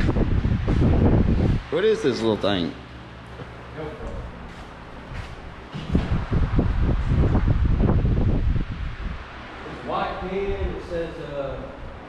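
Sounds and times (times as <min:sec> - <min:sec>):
wind buffeting microphone: 0:00.0 - 0:01.7, 0:05.1 - 0:12.0.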